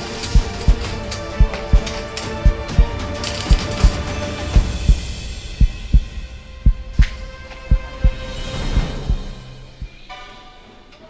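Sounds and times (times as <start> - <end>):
faint held music tone: 0.0 - 10.3
heartbeat thuds: 0.3 - 4.0, 4.6 - 10.0.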